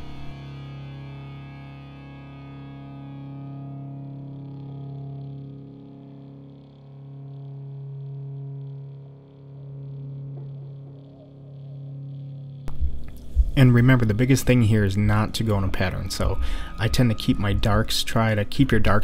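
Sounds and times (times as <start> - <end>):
music of sustained chords: 0.0 - 19.0.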